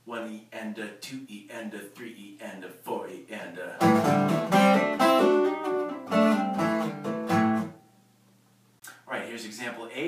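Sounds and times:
acoustic guitar notes: 3.7s - 8.1s.

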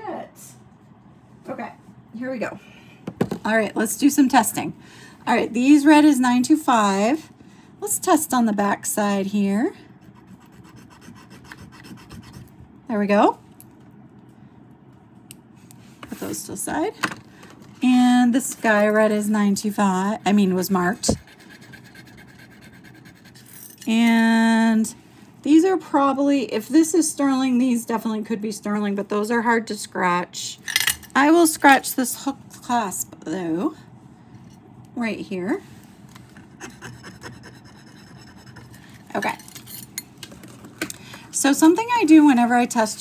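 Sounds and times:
metal scratching on stone: 36.6s - 40.0s.

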